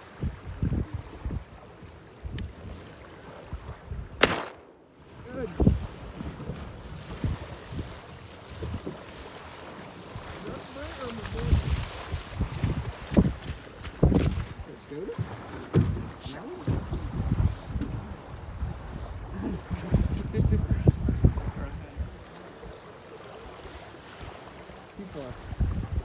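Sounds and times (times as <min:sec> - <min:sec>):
wind buffeting microphone: 0:00.0 - 0:04.4, 0:05.0 - 0:22.8, 0:25.2 - 0:26.0
water sloshing from wading: 0:00.0 - 0:20.3, 0:21.1 - 0:26.0.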